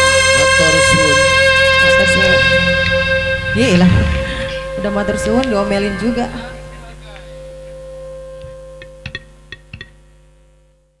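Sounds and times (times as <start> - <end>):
sound system humming: 0.0 - 9.0.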